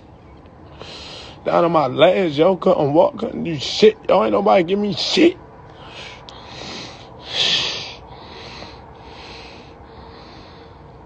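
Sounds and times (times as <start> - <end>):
man breathing: 0.7 - 1.5, 5.7 - 11.0.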